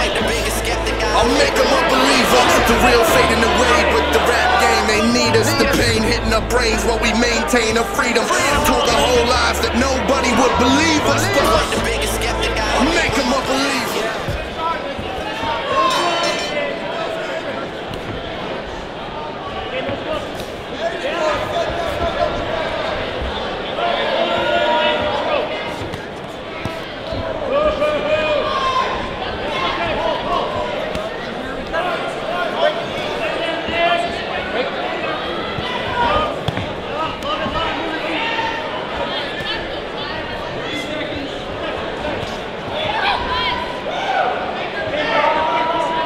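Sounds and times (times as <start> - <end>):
voices calling out: 0.0 - 14.6.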